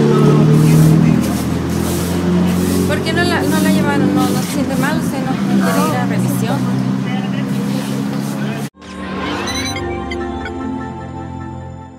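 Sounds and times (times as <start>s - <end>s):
low engine hum: 0.0s - 10.4s.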